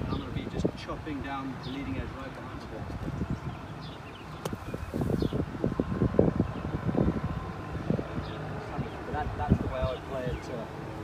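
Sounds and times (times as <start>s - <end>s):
wind on microphone: 0.0s - 11.0s
golf club striking sand: 4.4s - 5.1s.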